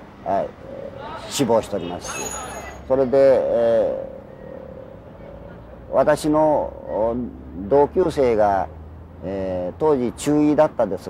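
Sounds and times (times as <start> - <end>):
man speaking: 0.2 - 4.2.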